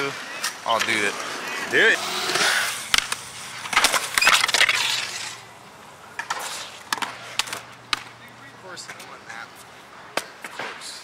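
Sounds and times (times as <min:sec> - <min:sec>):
skateboard wheels rolling on concrete: 0:00.0 - 0:11.0
skateboard clacking on concrete: 0:02.3 - 0:05.4, 0:06.0 - 0:09.2.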